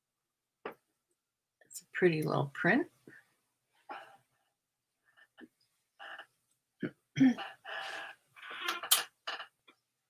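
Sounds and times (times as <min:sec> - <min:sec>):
woman clearing her throat: 0:06.8 - 0:07.6.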